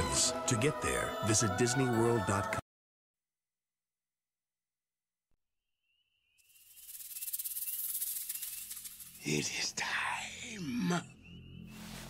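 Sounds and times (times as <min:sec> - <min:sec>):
rapid shaker rattle: 0:06.4 - 0:09.6.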